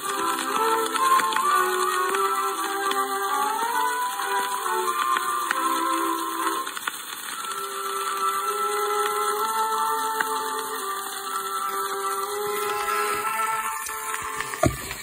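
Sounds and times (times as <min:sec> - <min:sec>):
orchestral music on old record: 0:00.0 - 0:15.0
record surface hiss: 0:00.0 - 0:15.0.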